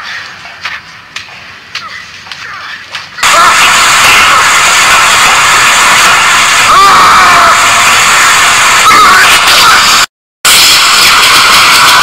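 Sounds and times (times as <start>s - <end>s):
film score and sound effects: 0.0s - 12.0s.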